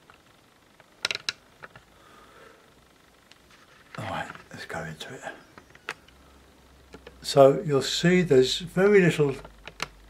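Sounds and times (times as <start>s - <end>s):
faint rustle: 1.7s - 4.6s.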